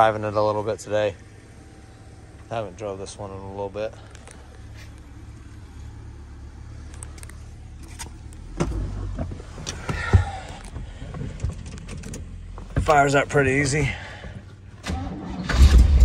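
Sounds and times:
low steady hum: 0.0 - 15.1
knocks and rustles in car seat: 8.4 - 13.2.

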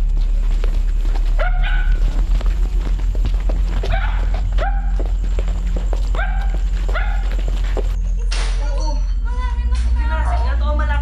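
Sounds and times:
loud low hum: 0.0 - 11.0
dog barking: 1.4 - 2.1, 3.8 - 5.1, 6.1 - 7.5.

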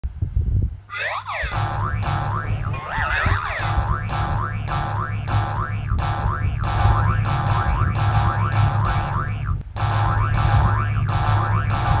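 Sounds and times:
cartoon boing sound effects: 1.0 - 12.0
background music with bass line: 1.4 - 12.0.

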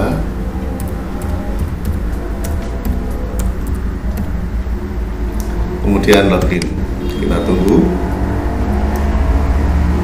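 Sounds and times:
steady low rumble: 0.0 - 9.1
keyboard keys clicking: 0.7 - 4.5.

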